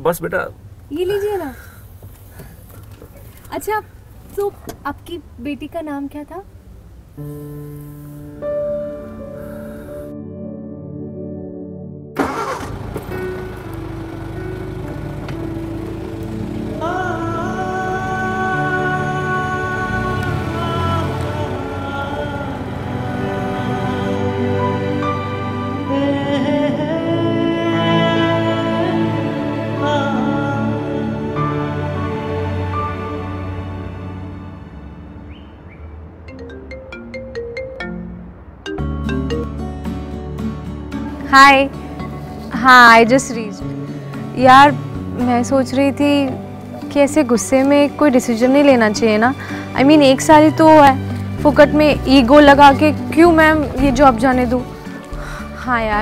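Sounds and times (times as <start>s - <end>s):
car engine idling: 12.2s - 25.1s
car engine starting: 12.2s - 56.0s
phone ringtone melody: 36.3s - 39.7s.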